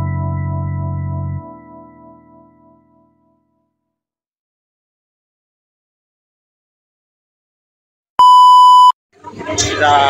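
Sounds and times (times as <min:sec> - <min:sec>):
electronic test tone beep: 0:08.2 - 0:09.0.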